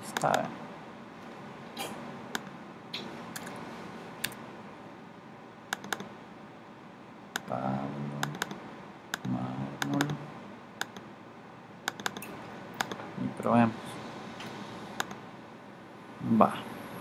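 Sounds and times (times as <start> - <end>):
computer keys clicking: 3.4 - 3.6, 5.7 - 6.1, 8.2 - 10.2, 11.9 - 13.0, 15.0 - 15.2.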